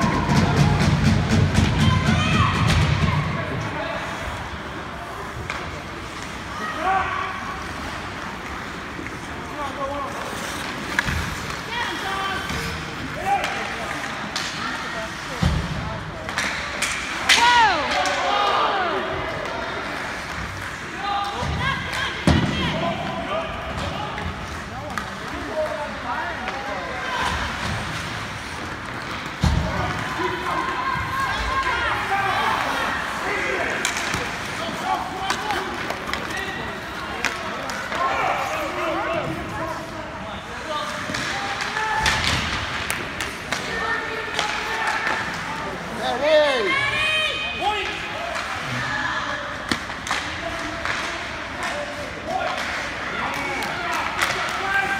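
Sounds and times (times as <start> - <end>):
pucks and sticks hitting boards: 0.0 - 3.8, 5.2 - 7.0, 7.6 - 46.7, 49.4 - 54.9.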